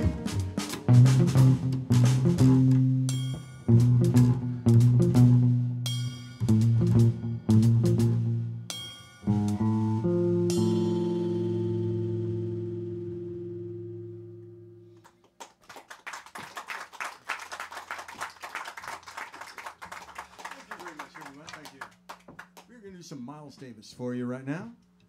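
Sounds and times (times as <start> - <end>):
upright bass: 0.0 - 8.7, 9.3 - 14.9
electric guitar: 0.0 - 15.1
audience applause: 15.3 - 22.7.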